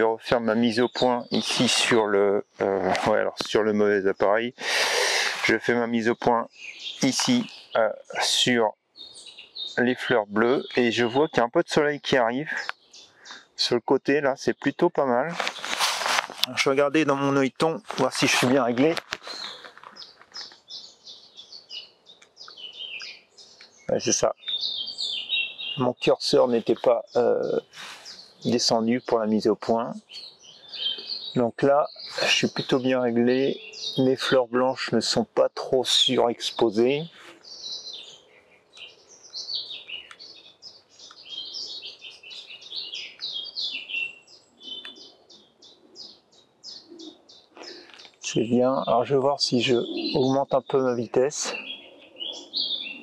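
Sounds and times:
songbird chirping: 0:00.0 - 0:53.0
fast repeated bird notes: 0:04.2 - 0:13.6, 0:16.7 - 0:53.0.

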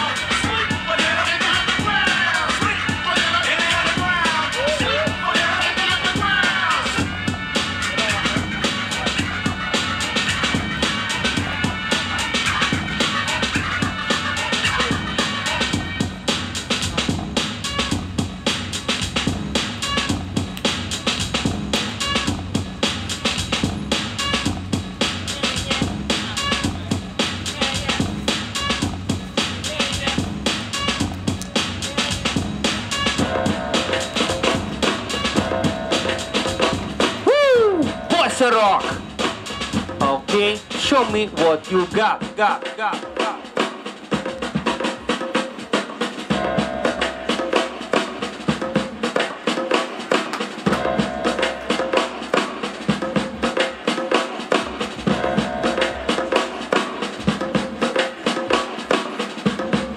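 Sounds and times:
breakbeat music with punchy drums: 0:00.0 - 0:59.9.

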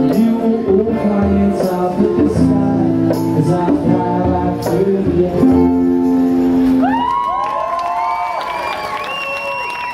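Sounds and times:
crowd cheering: 0:06.8 - 0:09.9
whoops and whistles: 0:06.8 - 0:09.9.

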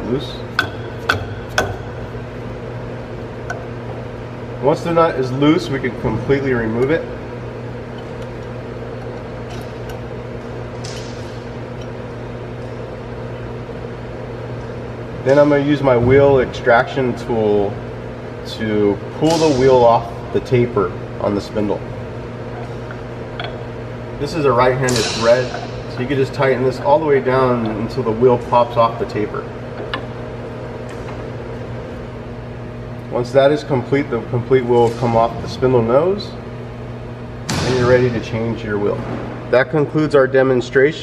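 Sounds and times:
low machine hum: 0:00.0 - 0:41.0.

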